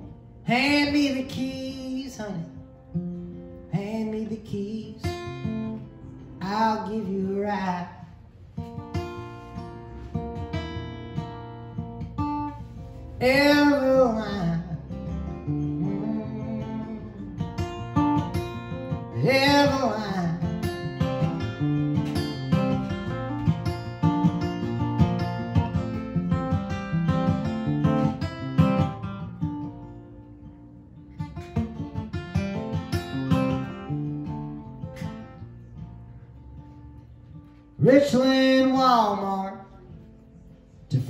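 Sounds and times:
acoustic guitar picked and strummed: 0:00.0 - 0:41.0.

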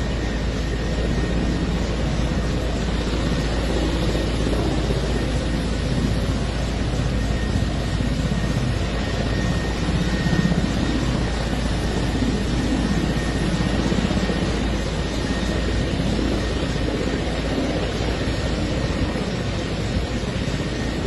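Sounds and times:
helicopter engine and rotor: 0:00.0 - 0:21.0.

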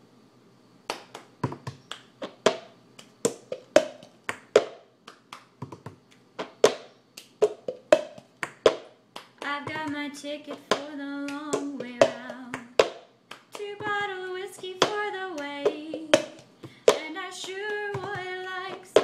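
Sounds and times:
hand claps: 0:00.9 - 0:10.0, 0:10.6 - 0:14.0
woman singing: 0:09.4 - 0:12.8, 0:13.5 - 0:19.0.

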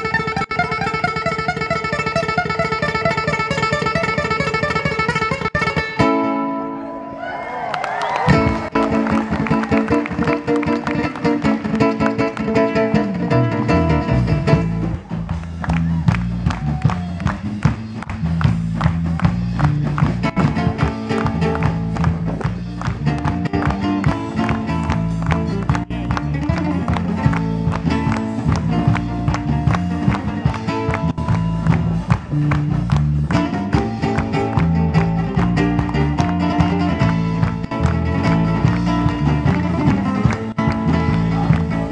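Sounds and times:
bass guitar: 0:00.0 - 0:41.9
guitar picked and strummed: 0:00.0 - 0:41.9
drums: 0:08.0 - 0:41.9.

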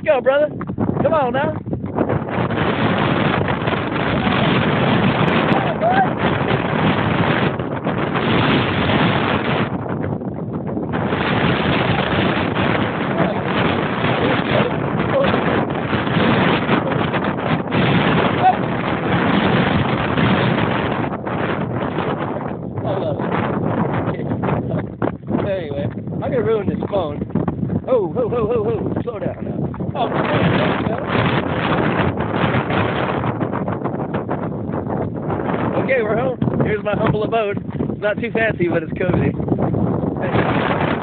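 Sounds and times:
wind buffeting microphone: 0:00.0 - 0:41.0.

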